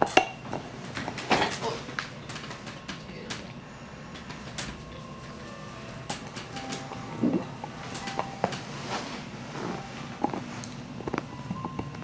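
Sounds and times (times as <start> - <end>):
rustling: 6.3 - 11.3.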